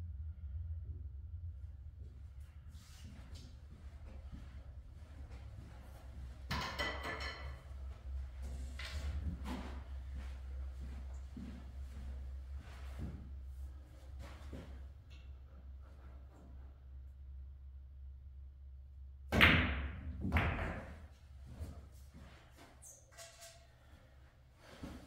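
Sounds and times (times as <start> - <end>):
low room hum: 0.0 - 25.0
faint scuffs and knocks: 7.7 - 14.9.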